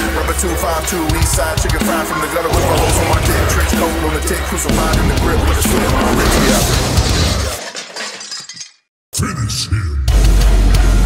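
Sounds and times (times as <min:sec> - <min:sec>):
sudden crash: 0:02.5 - 0:07.5.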